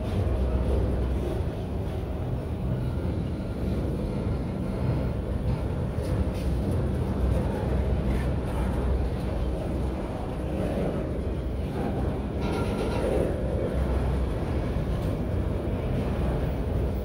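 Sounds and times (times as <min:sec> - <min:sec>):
train wheels rumbling on rails: 0:00.0 - 0:17.0.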